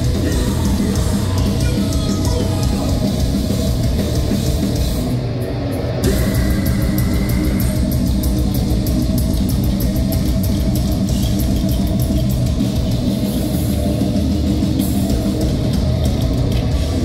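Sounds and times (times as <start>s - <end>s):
bass guitar: 0.0s - 17.0s
distorted electric guitars: 0.0s - 17.0s
drums: 0.0s - 17.0s
rapid cymbal hits: 0.0s - 17.0s.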